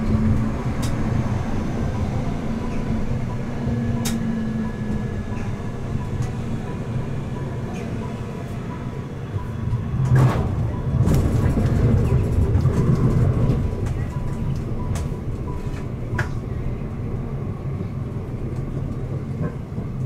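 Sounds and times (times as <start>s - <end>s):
tram wheels rumbling on rails: 0.0s - 20.0s.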